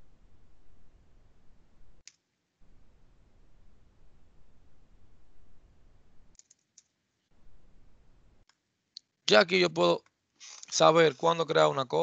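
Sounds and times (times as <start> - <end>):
computer mouse click: 6.4 - 6.9
faint microphone hiss: 7.2 - 12.0.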